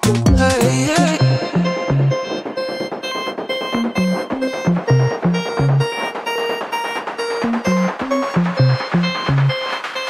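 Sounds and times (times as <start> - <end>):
background music with steady beat: 0.0 - 10.0.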